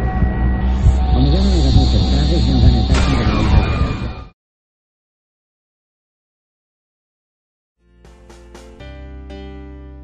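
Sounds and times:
deep steady drone: 0.0s - 4.2s
bending tones: 0.0s - 4.3s.

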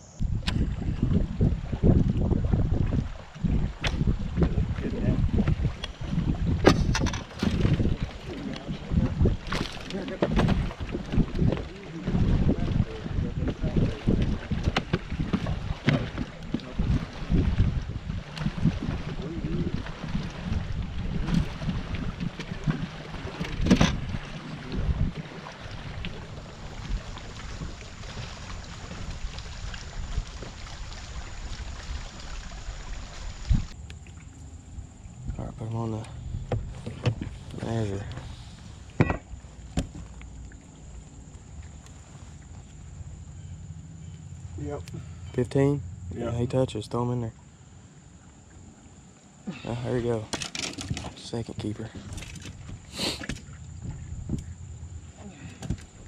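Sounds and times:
wind buffeting microphone: 0.0s - 33.8s, 50.8s - 56.0s
water lapping against hull: 0.0s - 56.0s
knocks and clicks on boat: 3.8s - 12.6s, 13.4s - 19.2s, 20.1s - 25.2s, 36.0s - 40.3s, 50.3s - 54.5s, 55.4s - 56.0s.

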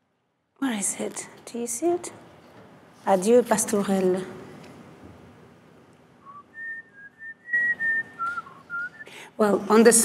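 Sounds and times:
person whistling a tune: 6.2s - 9.1s.

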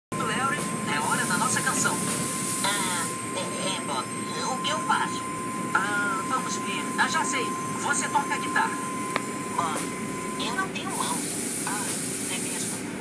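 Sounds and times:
voices talking: 0.2s - 12.9s
high hiss of spray: 10.9s - 12.8s
car wash water spray: 11.0s - 12.8s.

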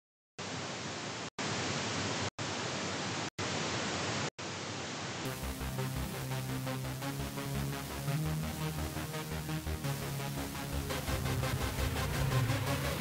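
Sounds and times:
static hiss: 0.4s - 13.0s
electronic music: 5.3s - 13.0s.

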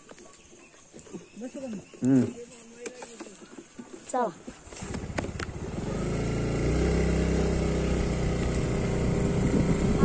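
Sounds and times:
small motorbike engine running: 4.6s - 10.0s.

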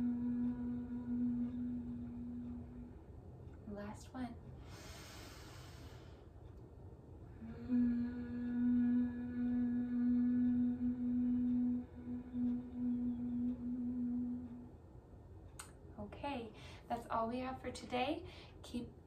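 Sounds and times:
person humming low: 0.0s - 3.0s, 7.3s - 14.8s.

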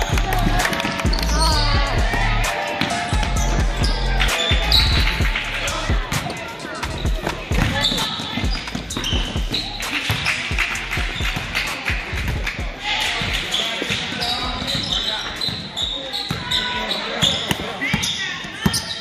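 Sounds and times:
music with heavy bass: 0.0s - 6.2s, 10.5s - 13.0s
voices: 0.0s - 19.0s
sneaker squeaks: 2.7s - 5.2s, 6.3s - 11.6s, 13.0s - 19.0s
basketball bouncing on wood floor: 6.9s - 10.4s.

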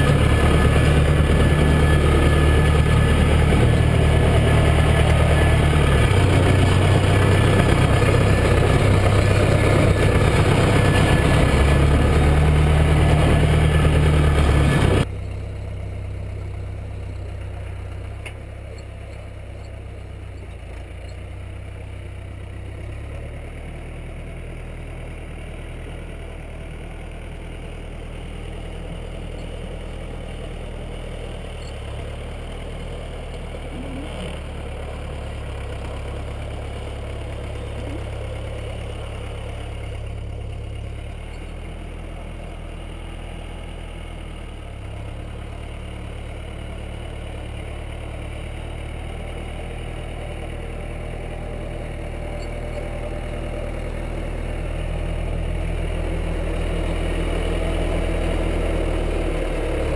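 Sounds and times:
tractor diesel engine running: 0.0s - 59.9s.

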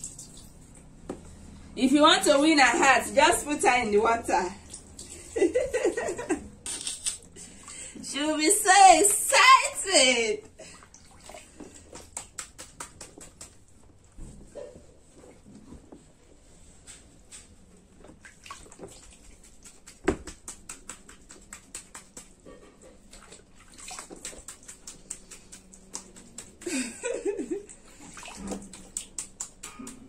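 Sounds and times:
water splashing in a tub: 10.6s - 13.3s, 18.0s - 22.4s, 23.0s - 26.6s, 27.8s - 29.6s.

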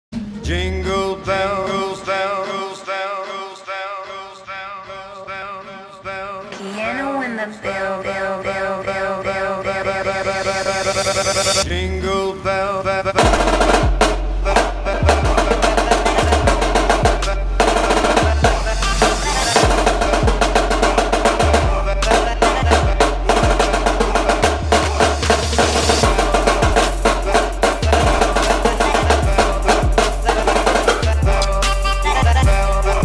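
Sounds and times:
backing track with deep bass: 13.2s - 33.0s
snare drum rolls: 13.2s - 33.0s.

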